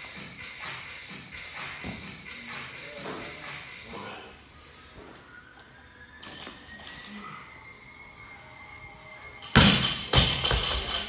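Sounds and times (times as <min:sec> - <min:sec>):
faint gym music: 0:00.0 - 0:11.0.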